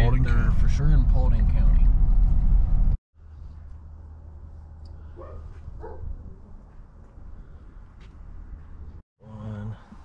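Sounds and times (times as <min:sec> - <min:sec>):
low rumble: 0:00.0 - 0:09.0
dog barking: 0:05.2 - 0:06.2.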